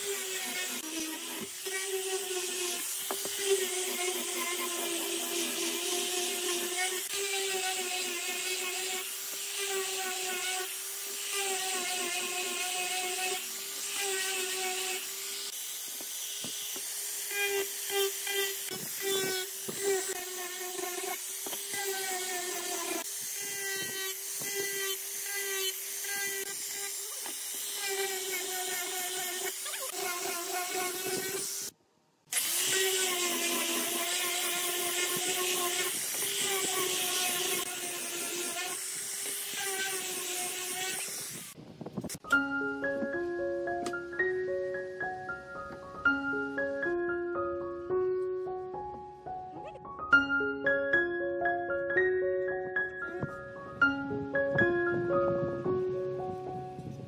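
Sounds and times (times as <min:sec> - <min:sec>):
angle grinder sanding wood: 0:00.0 - 0:42.2.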